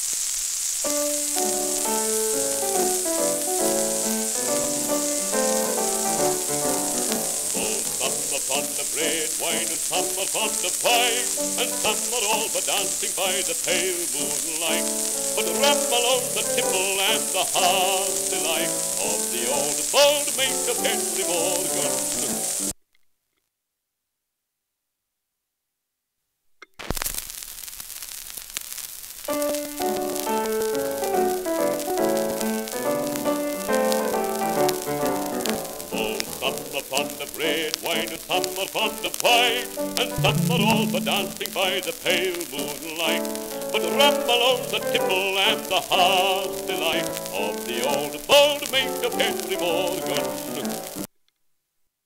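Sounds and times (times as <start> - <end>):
record hiss: 0.0 - 52.0
old record instrumental music: 0.8 - 22.7, 29.3 - 51.1.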